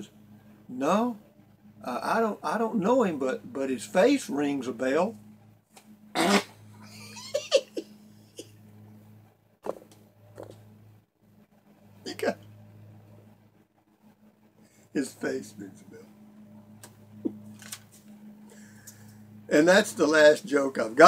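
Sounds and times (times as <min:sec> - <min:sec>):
steady low hum: 0:00.0 - 0:21.0
man laughing: 0:06.8 - 0:08.5.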